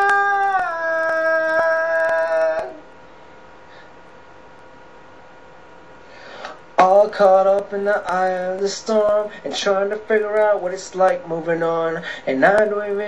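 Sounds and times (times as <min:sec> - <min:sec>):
person singing unaccompanied: 0:00.0 - 0:02.9, 0:06.8 - 0:13.0.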